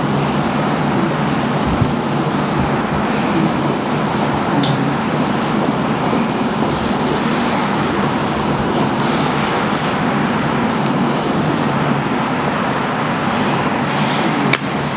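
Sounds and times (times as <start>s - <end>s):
loud steady rushing noise: 0.0s - 14.9s.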